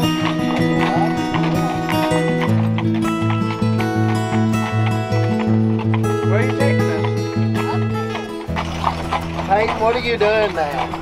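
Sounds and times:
hooves clopping on pavement: 0.0s - 11.0s
music: 0.0s - 11.0s.

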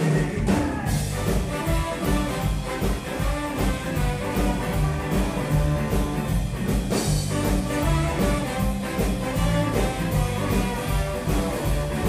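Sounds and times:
electric guitar: 0.0s - 12.0s
live ska band playing: 0.0s - 12.0s.

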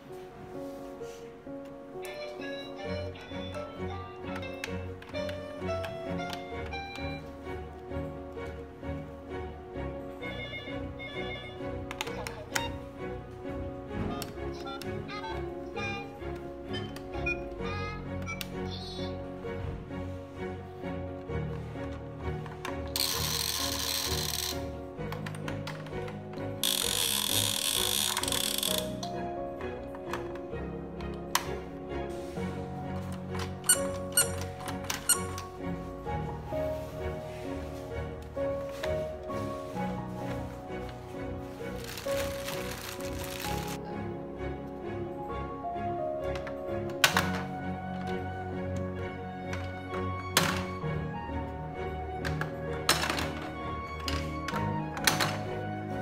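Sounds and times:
simple toy tune: 10.2s - 12.8s, 16.7s - 19.0s.

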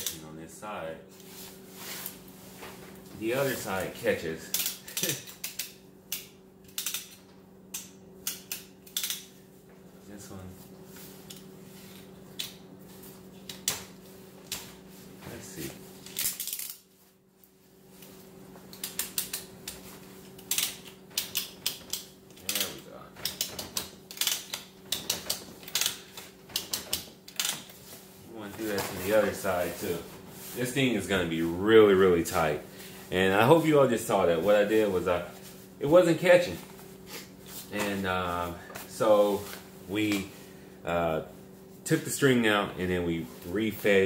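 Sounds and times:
steady low hum: 0.0s - 44.0s
ratchet buckle clicking: 4.5s - 9.3s, 20.4s - 26.0s.

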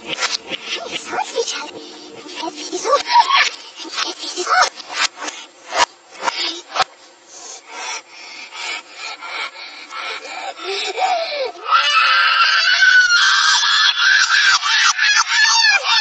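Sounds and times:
reversed rasping rubbing strokes: 0.0s - 11.2s
reversed child screaming: 0.2s - 16.0s.

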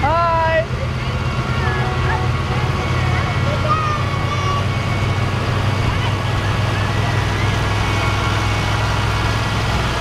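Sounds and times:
faint voices: 0.0s - 8.3s
tractor engines rumbling: 0.0s - 10.0s.

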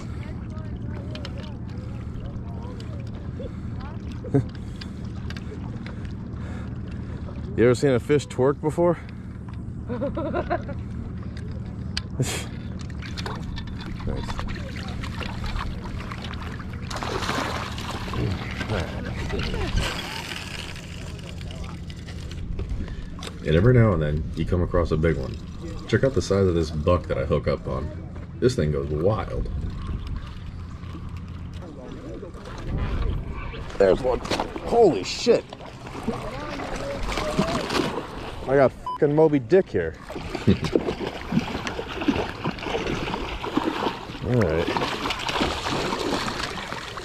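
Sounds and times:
water sloshing: 0.0s - 47.0s
fish splashing at surface: 12.9s - 22.3s, 35.5s - 38.5s, 40.0s - 47.0s.

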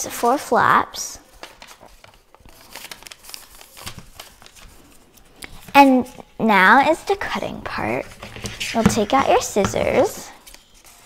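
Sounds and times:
paper crinkling and rustling: 1.3s - 6.2s, 6.9s - 11.0s.

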